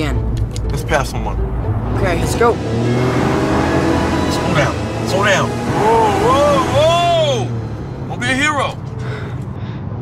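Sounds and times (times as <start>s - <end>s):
car cabin hum: 2.0s - 9.0s.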